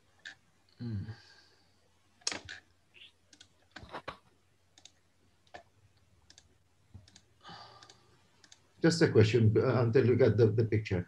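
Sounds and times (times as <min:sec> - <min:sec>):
mouse and keyboard clicks: 0:02.2 - 0:02.7, 0:03.3 - 0:04.2.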